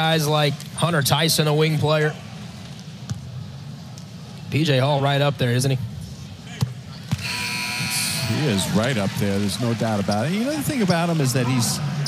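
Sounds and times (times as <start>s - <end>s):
arena crowd cheering: 7.2s - 12.0s.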